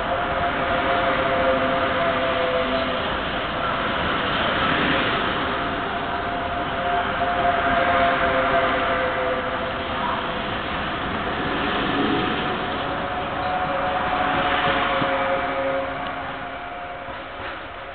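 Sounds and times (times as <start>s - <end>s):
high train whine: 0.0s - 17.9s
train wheels rolling on rail: 0.0s - 17.9s.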